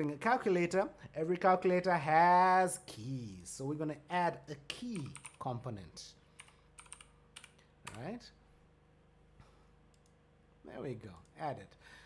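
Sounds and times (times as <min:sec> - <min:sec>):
soft keyboard keystrokes: 0:06.4 - 0:08.1.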